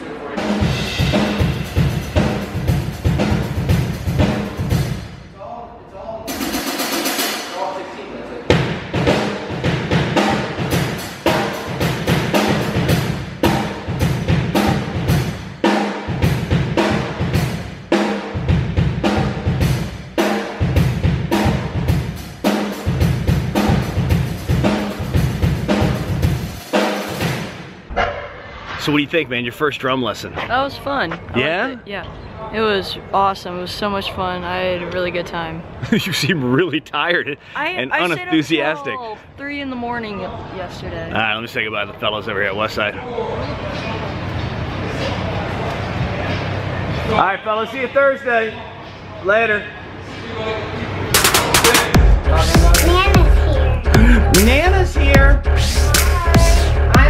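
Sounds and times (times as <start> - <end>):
drum kit playing fast beat: 0.4 - 5.0, 6.3 - 7.5, 8.5 - 27.6, 51.2 - 57.0.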